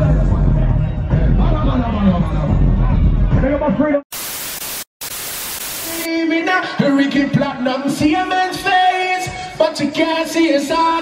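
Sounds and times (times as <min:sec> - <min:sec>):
man's voice: 0:00.0 - 0:04.0, 0:05.9 - 0:11.0
music with singing: 0:00.0 - 0:04.0, 0:05.9 - 0:11.0
static hiss burst: 0:04.1 - 0:06.1.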